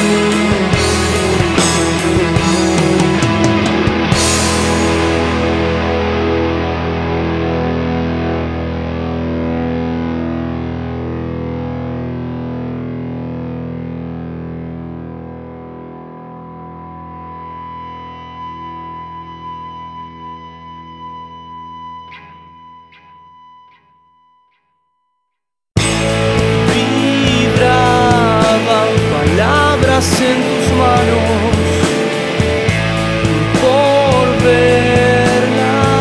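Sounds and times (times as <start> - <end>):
distorted electric guitar chord: 0.0 - 24.6, 25.8 - 36.0
steady high tone: 18.7 - 33.8.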